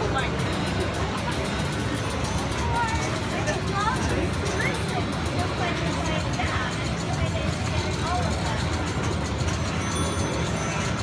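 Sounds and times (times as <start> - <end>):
people's voices: 0.0 - 11.0
pinball machine electronic sounds: 0.0 - 11.0.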